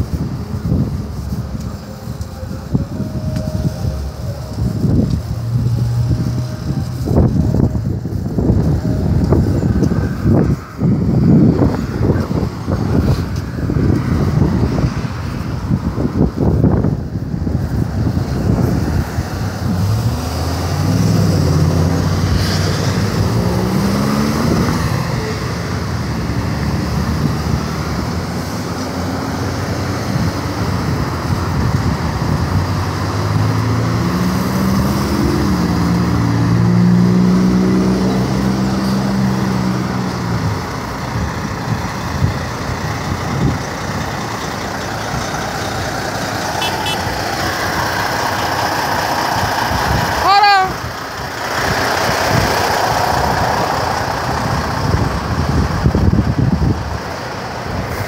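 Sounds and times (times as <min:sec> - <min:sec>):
road traffic passing: 0:00.0 - 0:58.0
truck diesel engine: 0:00.0 - 0:58.0.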